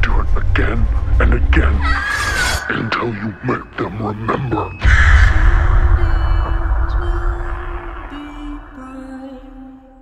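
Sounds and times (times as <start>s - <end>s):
low rumbling drone: 0.0s - 10.0s
steady held tone: 2.6s - 10.0s
deep boom hit: 4.8s - 9.7s.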